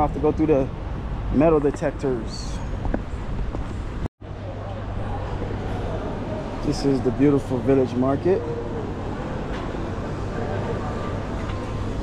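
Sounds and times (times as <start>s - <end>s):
faint voices: 4.3s - 12.0s
murmur of voices: 4.3s - 12.0s.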